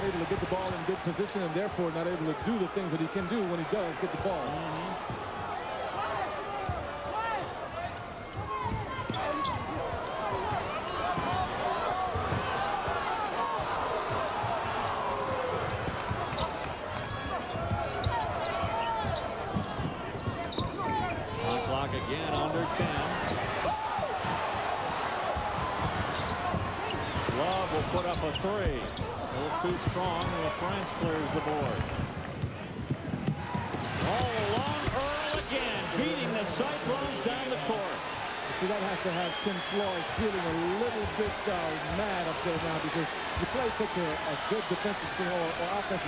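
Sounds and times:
arena crowd noise: 0.0 - 46.0
sneakers squeaking: 6.6 - 31.2, 33.0 - 38.4, 39.0 - 40.2.

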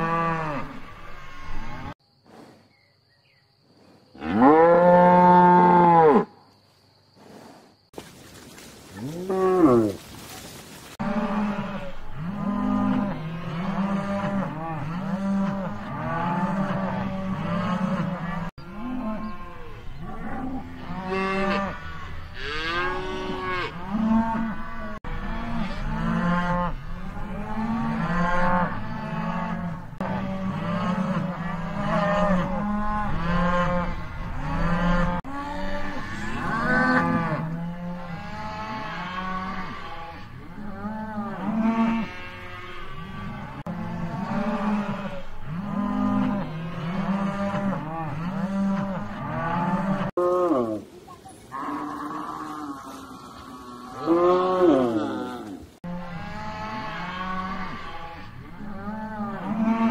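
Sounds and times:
cattle mooing: 0.0 - 2.0, 4.2 - 6.3, 11.0 - 50.8, 51.5 - 59.9.

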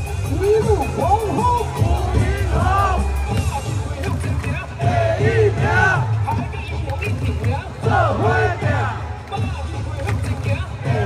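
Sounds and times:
cheer music over stadium speakers: 0.0 - 11.0
crowd voices: 0.0 - 11.0.

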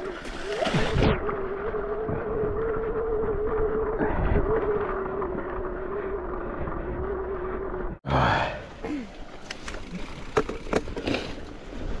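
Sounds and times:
bike tyre rumble: 9.1 - 12.0.

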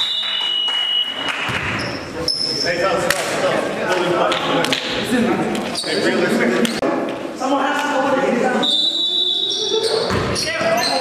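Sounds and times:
players' voices echoing: 1.2 - 11.0
basketball bouncing on court: 1.5 - 2.0, 10.0 - 10.8.

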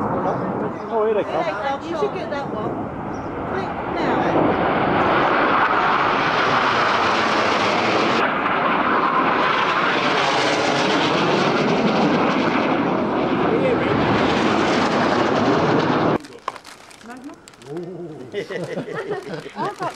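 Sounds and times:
jets flying low overhead: 0.0 - 16.2.

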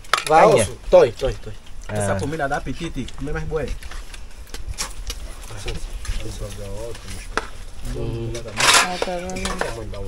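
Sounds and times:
voices talking: 0.1 - 3.8, 5.2 - 10.0
metal spoon scraping pot: 8.4 - 9.8.

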